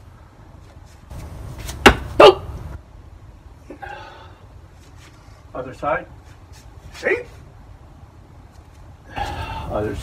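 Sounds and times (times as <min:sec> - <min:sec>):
wooden sword striking target dummy: 0:01.8 - 0:02.3.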